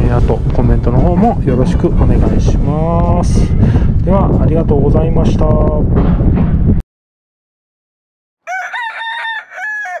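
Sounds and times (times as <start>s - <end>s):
rooster crowing: 8.4s - 10.0s.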